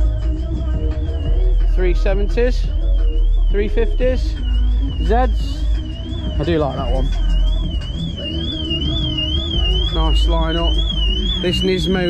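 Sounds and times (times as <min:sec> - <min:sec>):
bass-heavy background music: 0:00.0 - 0:12.0
car alarm siren warbling: 0:00.0 - 0:12.0.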